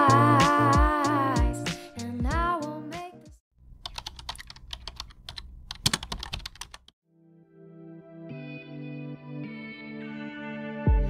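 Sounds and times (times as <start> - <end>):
keyboard typing clicks: 3.8 - 6.9.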